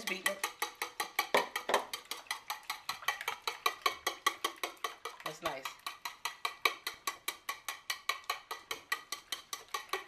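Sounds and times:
whisk beating eggs in bowl: 0.0 - 10.0.

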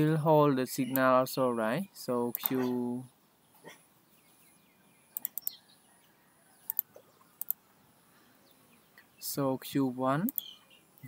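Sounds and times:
computer mouse clicking: 5.2 - 5.5, 6.6 - 7.6.

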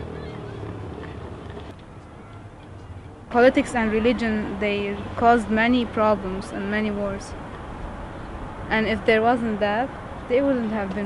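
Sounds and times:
city background rumble: 0.0 - 11.0.

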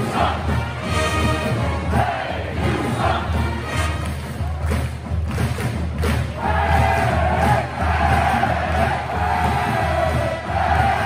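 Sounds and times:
crowd shouting and chanting: 0.0 - 3.8, 6.3 - 11.0.

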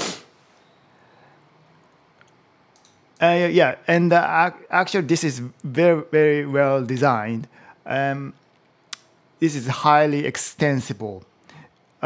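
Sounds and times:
brief hiss: 0.0 - 0.6
man speaking: 3.2 - 8.4, 9.4 - 11.2.

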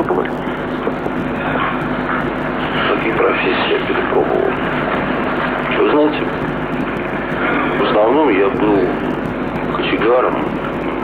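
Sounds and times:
muffled speech: 0.0 - 11.0
steady noise with low hum: 0.0 - 11.0.

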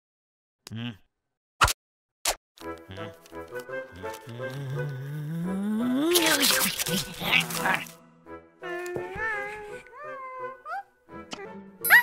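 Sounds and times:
background music: 2.6 - 12.0.

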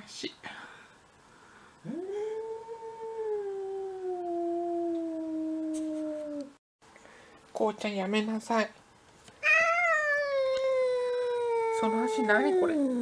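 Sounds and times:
cat yowling: 9.4 - 13.0.

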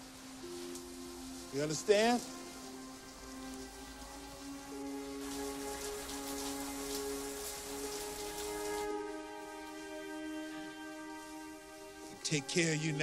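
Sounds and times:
soft film score: 0.0 - 13.0.

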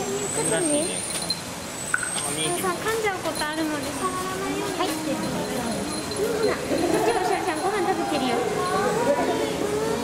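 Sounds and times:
people talking: 2.1 - 10.0.

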